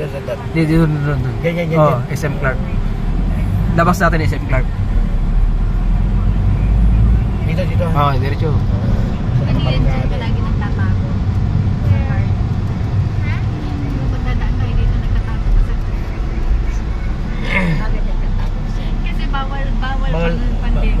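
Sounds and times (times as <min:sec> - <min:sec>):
vehicle engine and tyres rumble: 0:00.0 - 0:21.0.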